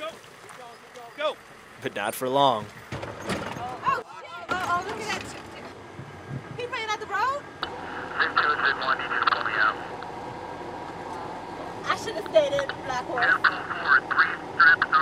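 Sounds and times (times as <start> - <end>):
people talking: 6.6 - 7.4, 8.2 - 9.9, 11.8 - 15.0
hissy radio transmission: 7.6 - 10.1, 12.7 - 15.0.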